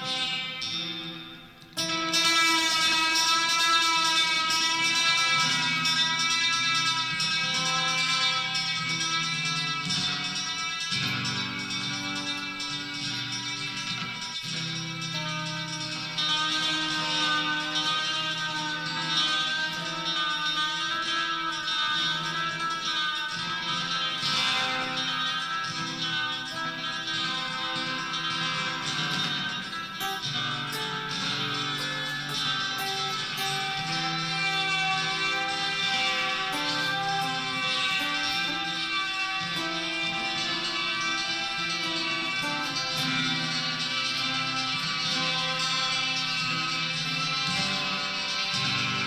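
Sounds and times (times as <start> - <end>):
electric guitar with delay: 0.0 - 49.0.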